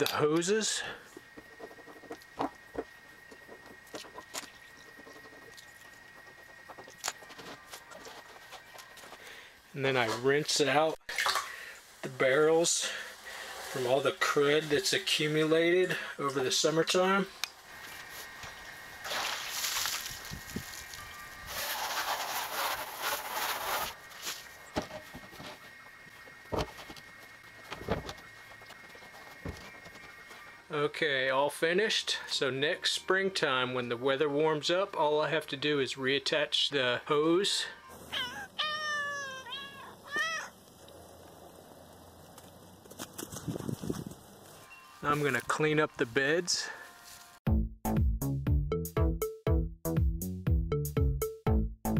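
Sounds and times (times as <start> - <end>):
hose water spraying into barrel: 12.6 - 14.6, 17.8 - 24.6
cat meowing: 37.8 - 40.6.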